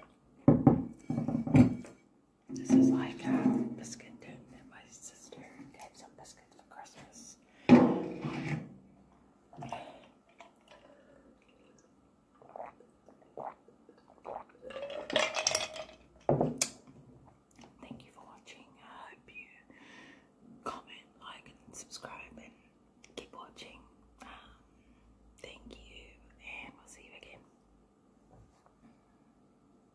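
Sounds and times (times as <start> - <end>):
woman whispering: 2.5 - 7.5, 17.8 - 19.7, 20.6 - 24.7, 25.4 - 27.6.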